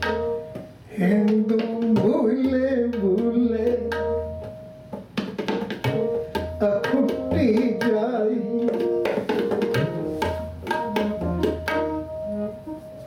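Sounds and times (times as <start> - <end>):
tabla strokes: 0.0 - 13.0
man singing: 0.9 - 4.2, 6.6 - 9.3.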